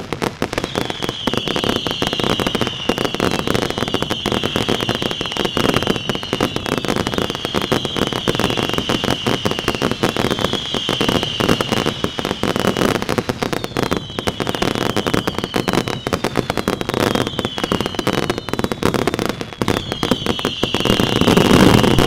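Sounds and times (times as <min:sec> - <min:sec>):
firework whistles: 0:00.0 - 0:22.0
fireworks popping and crackling: 0:00.0 - 0:22.0.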